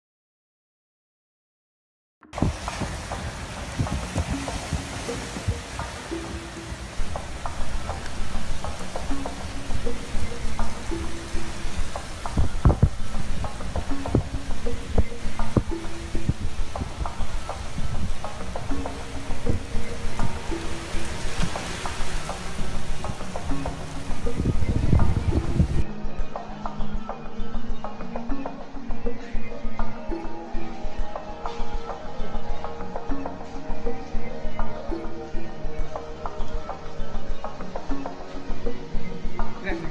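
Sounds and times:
music with low repeated notes: 2.2s - 39.9s
gusty knocks: 2.4s - 25.8s
heavy rain and wind: 2.4s - 25.9s.

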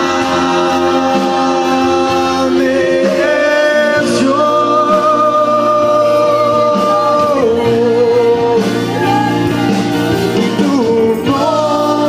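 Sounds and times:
instrumental accompaniment: 0.0s - 12.0s
person singing worship song: 0.0s - 12.0s.

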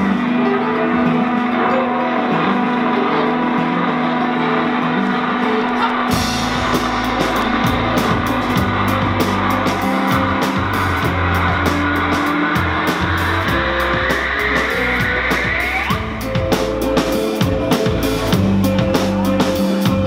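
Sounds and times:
cymbal strokes: 0.0s - 20.0s
drum kit: 0.0s - 20.0s
held bass notes: 0.0s - 20.0s
mandolin: 0.0s - 20.0s
note gliding upward: 0.0s - 20.0s.

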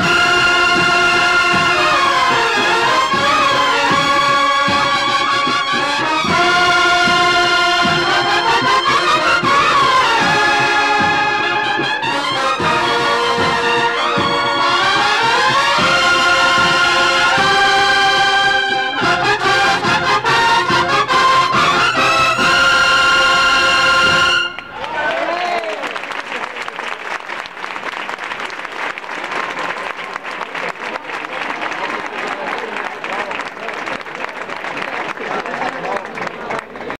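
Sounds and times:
brass band playing march: 0.0s - 25.2s.

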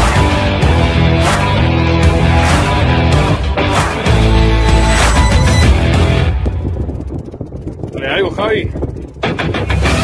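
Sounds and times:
ringing chord: 4.4s - 6.4s.

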